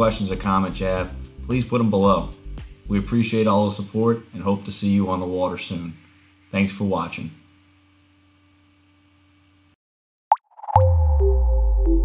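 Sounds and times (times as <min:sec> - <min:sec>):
faint hum: 0:00.0 - 0:09.8.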